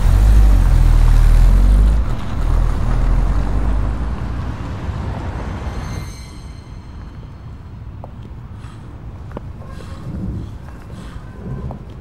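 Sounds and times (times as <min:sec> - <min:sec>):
car road noise rumble: 0:00.0 - 0:05.9.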